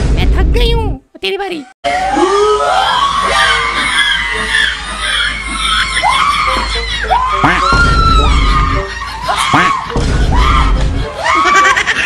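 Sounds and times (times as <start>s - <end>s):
wavering screams and shrieks: 1.9s - 12.0s.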